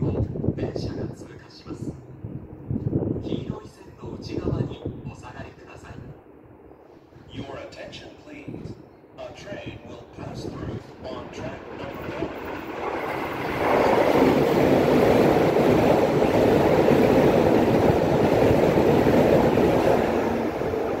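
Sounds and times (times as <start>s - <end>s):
train passing at speed: 0.0s - 21.0s.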